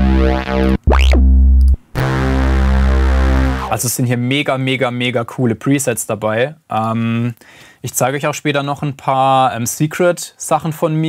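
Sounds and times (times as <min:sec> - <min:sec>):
synth bass notes: 0:00.0 - 0:03.9.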